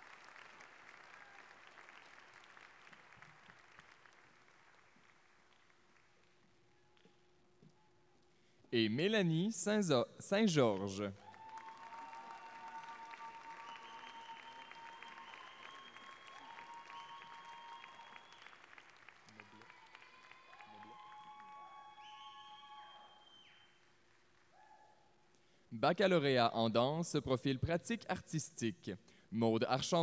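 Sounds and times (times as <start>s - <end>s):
audience applauding: 0.0s - 6.2s, 11.2s - 24.5s.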